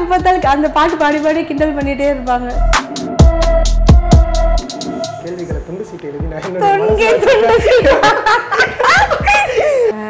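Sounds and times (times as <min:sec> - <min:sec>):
woman laughing heartily: 0:07.2 - 0:10.0.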